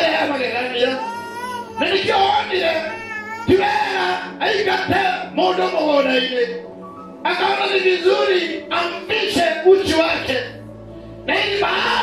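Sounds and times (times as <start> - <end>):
man preaching into a microphone: 0.0 - 12.0.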